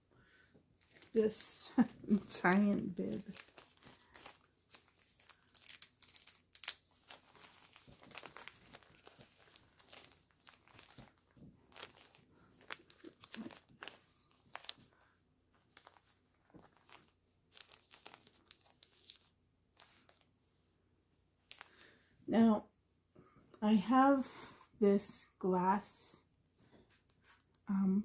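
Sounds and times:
cloth rustling and crinkling: 0:00.7 - 0:22.0.

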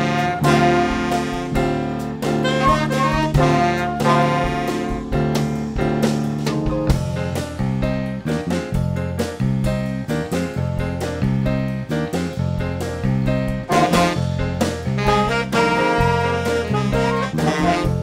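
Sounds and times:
saxophone melody: 0:00.0 - 0:05.5, 0:13.7 - 0:18.0
jazz ensemble playing: 0:00.0 - 0:18.0
sharp drum hits: 0:13.7 - 0:17.1.

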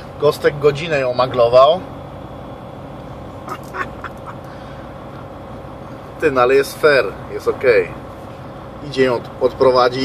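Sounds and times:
idling truck cab hum: 0:00.0 - 0:10.0.

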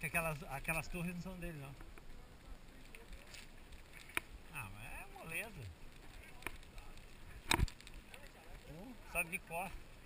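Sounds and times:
bike tyres rumbling on dirt road: 0:00.0 - 0:10.0.

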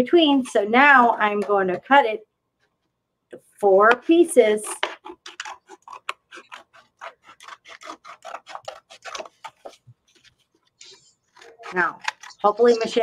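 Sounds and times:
scissors snipping paper plate: 0:04.5 - 0:10.2, 0:11.3 - 0:13.0
paper scraping: 0:04.6 - 0:13.0.

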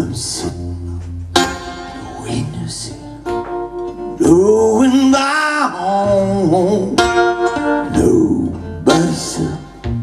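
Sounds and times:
man singing: 0:00.0 - 0:01.1, 0:01.7 - 0:03.3, 0:04.1 - 0:10.0
acoustic guitar: 0:00.0 - 0:10.0.

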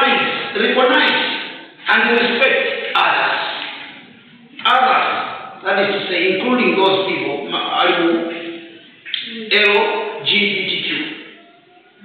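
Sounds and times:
man speaking: 0:00.0 - 0:03.8, 0:04.6 - 0:11.3.

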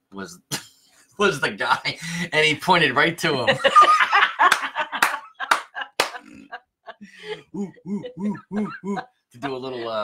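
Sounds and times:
people laughing: 0:03.3 - 0:10.0.

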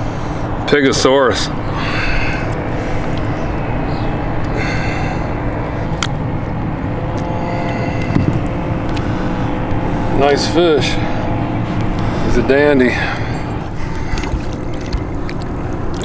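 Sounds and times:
boat low rumble with hum: 0:00.0 - 0:16.0.

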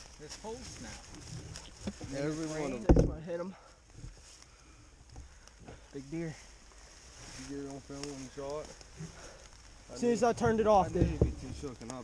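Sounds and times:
man speaking: 0:02.0 - 0:03.6, 0:09.9 - 0:12.0.

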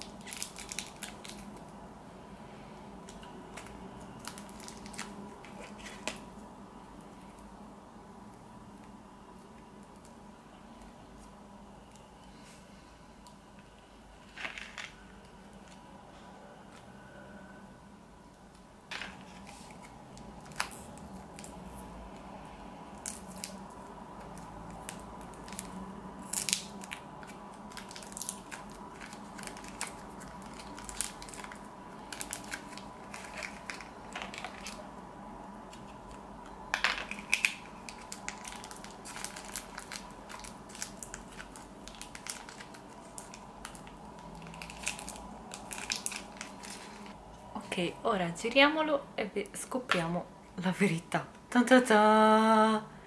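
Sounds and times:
foil packet crinkling: 0:00.0 - 0:01.6, 0:24.7 - 0:34.9, 0:36.8 - 0:47.2
faint steady hum: 0:00.0 - 0:53.0.

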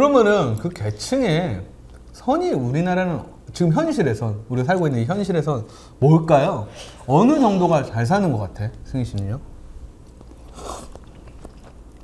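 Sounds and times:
soft chewing: 0:01.7 - 0:02.3, 0:08.7 - 0:12.0.

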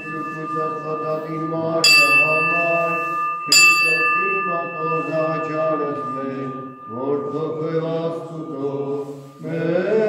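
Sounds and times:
male voices chanting: 0:00.0 - 0:10.0.

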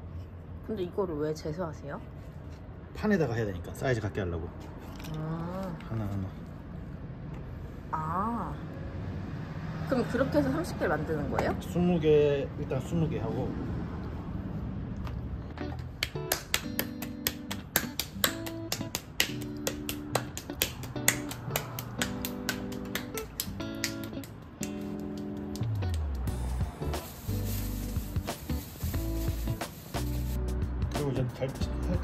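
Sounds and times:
light background music: 0:15.6 - 0:32.0
snapping clicks beat: 0:15.7 - 0:26.3
deep bass line: 0:25.6 - 0:31.0.

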